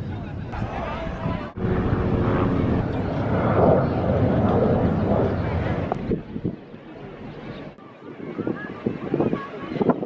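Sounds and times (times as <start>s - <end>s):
crowd chatter: 0.0s - 10.0s
wind rumble on microphone: 0.0s - 10.0s.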